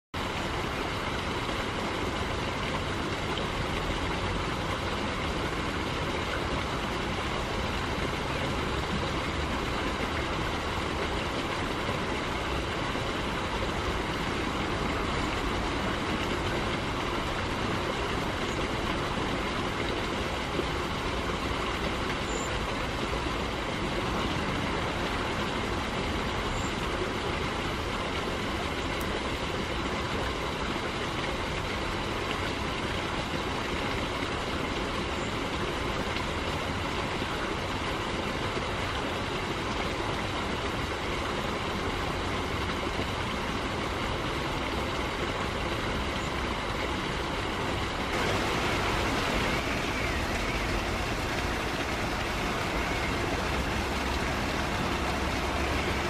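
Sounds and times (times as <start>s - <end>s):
stream rushing over stones: 0.2s - 56.0s.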